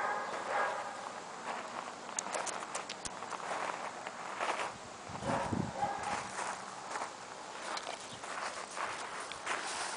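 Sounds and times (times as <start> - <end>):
footsteps on gravel: 0.0 - 9.9.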